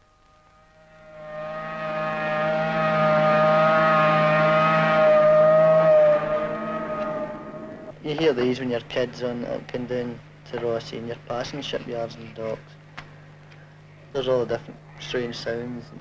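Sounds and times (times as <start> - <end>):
horn sounding long note: 0.0 - 8.0.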